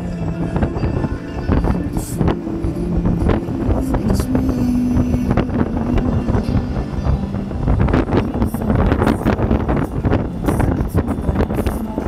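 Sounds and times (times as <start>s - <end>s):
music playing: 0.0s - 12.0s
wind buffeting microphone: 0.0s - 12.0s.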